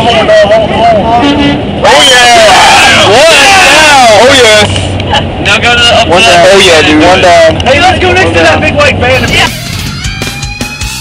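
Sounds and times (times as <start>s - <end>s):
van engine hum and road noise: 0.0s - 11.0s.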